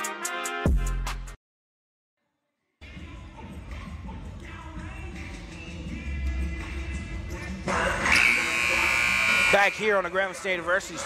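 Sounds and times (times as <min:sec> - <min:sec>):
music over sound system: 0:00.0 - 0:01.4, 0:02.8 - 0:11.0
electronic buzzer tone: 0:08.1 - 0:09.8.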